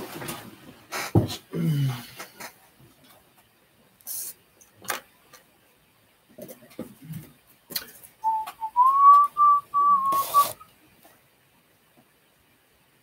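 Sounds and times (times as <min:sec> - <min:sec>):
brief burst of noise: 0:08.2 - 0:10.6
person whistling: 0:08.2 - 0:10.6.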